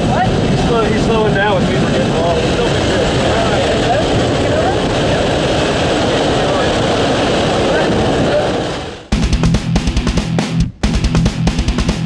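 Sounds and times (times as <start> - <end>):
wind rushing: 0.0 - 9.5
propeller plane engine: 0.0 - 12.0.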